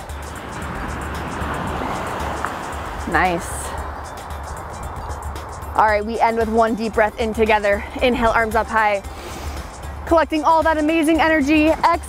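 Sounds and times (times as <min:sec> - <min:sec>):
ocean waves breaking: 0:00.0 - 0:09.8
background music with pulsing beat: 0:00.0 - 0:12.0.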